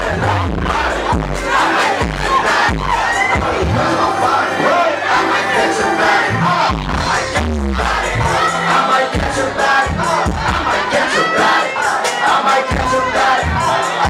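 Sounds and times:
crowd shouting and chanting: 0.0s - 14.0s
hip-hop track with deep bass: 0.0s - 14.0s.

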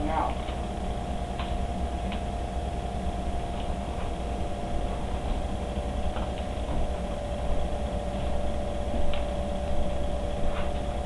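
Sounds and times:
mechanical hum: 0.0s - 11.0s.

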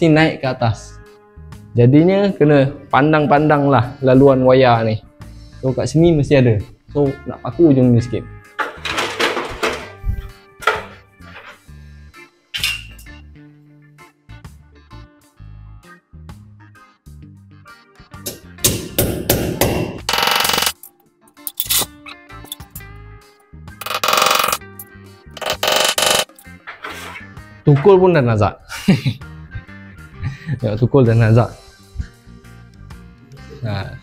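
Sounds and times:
hammer striking nail in metal rail: 18.3s - 20.7s.

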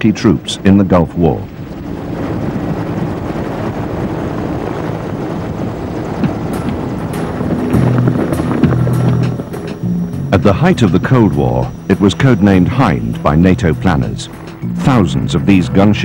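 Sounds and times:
helicopter rotor and turbine: 0.0s - 16.0s.

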